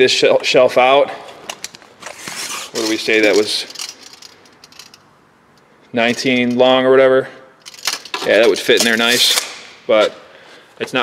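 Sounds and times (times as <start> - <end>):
tape measure blade clicking and rattling: 1.6 - 5.0.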